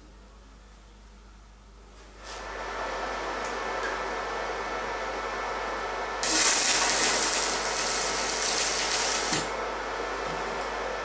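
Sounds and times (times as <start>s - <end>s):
welding arc crackling: 6.2s - 9.6s.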